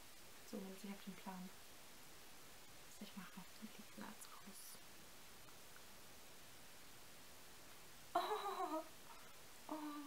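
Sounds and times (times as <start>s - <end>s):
room hiss: 0.0s - 10.0s
woman speaking softly: 0.5s - 1.6s, 2.9s - 4.9s.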